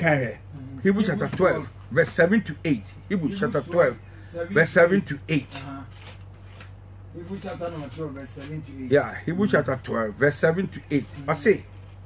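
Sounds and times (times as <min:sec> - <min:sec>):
low electrical hum: 0:00.0 - 0:12.0
pages rustling: 0:05.4 - 0:08.9, 0:10.7 - 0:12.0.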